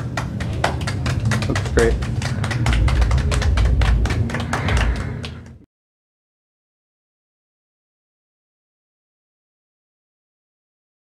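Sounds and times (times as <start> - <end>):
people clapping: 0.0 - 5.6.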